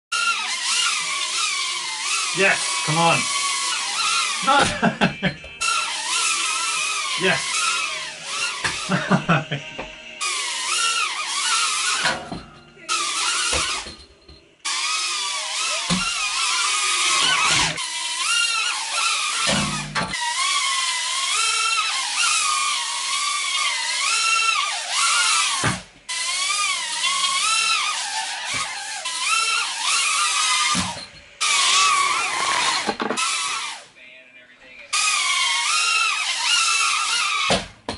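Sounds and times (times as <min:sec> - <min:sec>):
quadcopter motors whining: 0:00.1 - 0:09.6, 0:10.2 - 0:12.2, 0:12.9 - 0:14.0, 0:14.6 - 0:33.9, 0:35.0 - 0:37.6.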